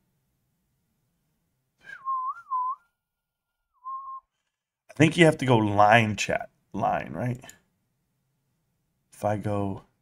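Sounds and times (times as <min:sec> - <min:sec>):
person whistling: 0:01.8 - 0:03.0, 0:03.7 - 0:04.3.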